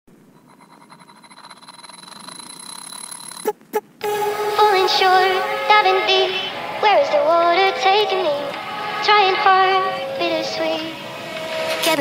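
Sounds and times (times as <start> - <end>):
fast-pulsing build-up: 0.2 - 12.0
thin high tone: 0.2 - 12.0.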